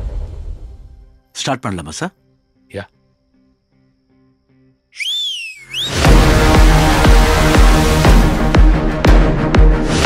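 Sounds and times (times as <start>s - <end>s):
faint background music: 0.5s - 5.0s
loud gliding whistle: 4.9s - 6.1s.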